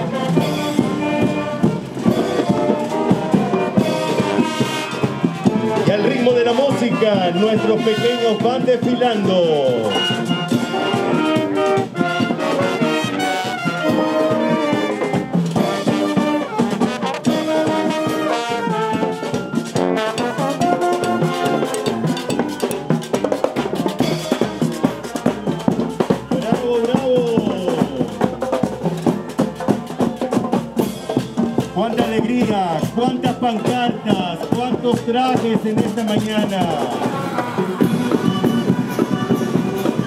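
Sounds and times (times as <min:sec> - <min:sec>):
marching band brass melody: 0:00.0 - 0:40.0
snare and tenor drums: 0:00.0 - 0:40.0.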